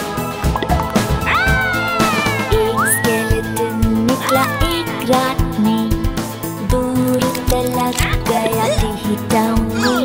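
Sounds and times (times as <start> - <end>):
upbeat children's song music: 0.0 - 10.0.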